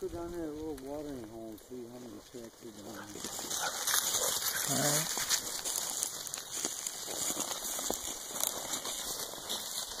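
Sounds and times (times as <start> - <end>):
footsteps crunching through snow: 0.0 - 10.0.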